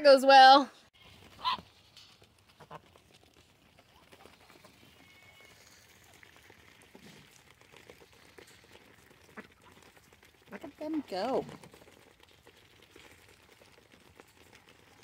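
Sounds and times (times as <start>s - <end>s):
ducks pecking pellets: 1.0s - 15.0s.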